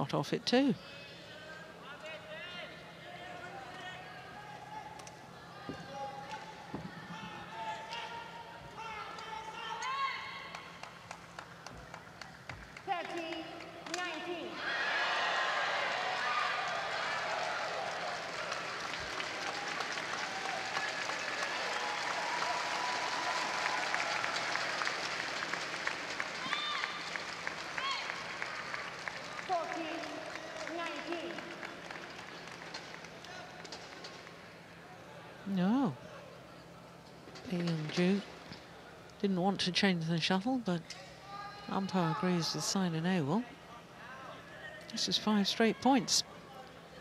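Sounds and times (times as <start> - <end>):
crowd applause and cheering: 14.6 - 34.4.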